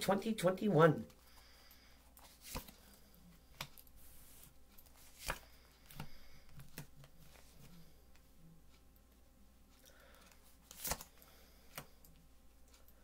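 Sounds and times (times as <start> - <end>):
cards rustling: 2.2 - 7.9, 10.1 - 12.0.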